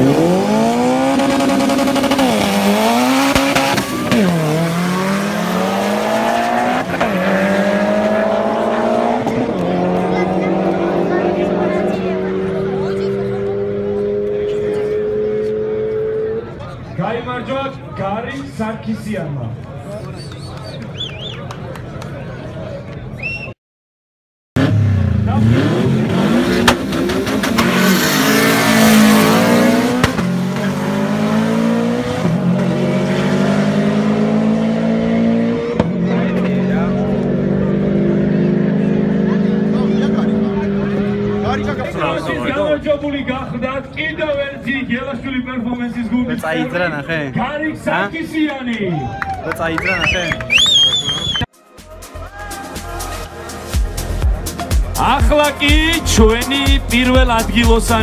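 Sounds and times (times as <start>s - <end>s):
turbocharged engine at high revs: 0.0s - 16.4s, 24.6s - 42.0s
men talking: 16.2s - 23.0s, 35.9s - 50.6s, 54.5s - 58.0s.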